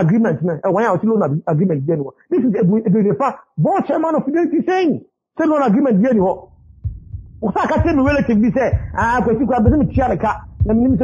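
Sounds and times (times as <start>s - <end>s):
man talking: 0.0s - 6.5s, 7.4s - 11.0s
low dull thumps: 6.3s - 11.0s.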